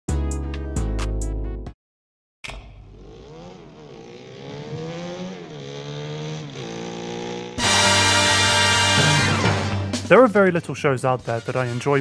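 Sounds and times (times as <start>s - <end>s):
motorcycle engine revving: 2.6s - 10.1s
loud theme music: 7.6s - 10.5s.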